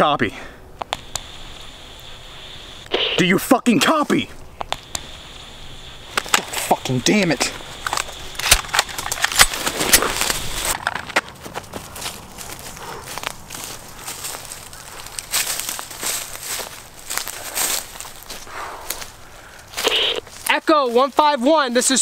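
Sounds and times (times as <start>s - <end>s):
footsteps crunching on dry leaves: 6.0s - 21.9s.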